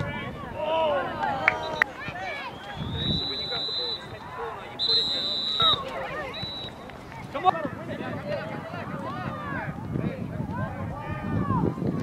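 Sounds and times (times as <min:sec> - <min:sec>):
distant spectators' voices: 0:00.0 - 0:12.0
referee's whistle blasts: 0:01.6 - 0:04.1, 0:04.8 - 0:06.8.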